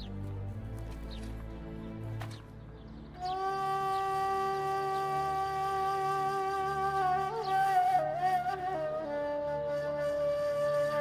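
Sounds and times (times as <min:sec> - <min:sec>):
flute-like long steady note: 0:03.1 - 0:11.0.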